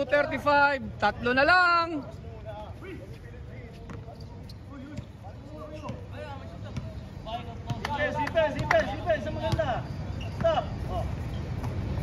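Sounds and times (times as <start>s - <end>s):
players calling out: 1.2s - 12.0s.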